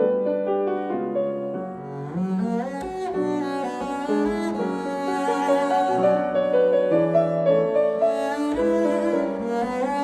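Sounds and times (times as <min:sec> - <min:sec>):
bowed double bass melody: 0:00.0 - 0:10.0
piano accompaniment: 0:00.0 - 0:10.0.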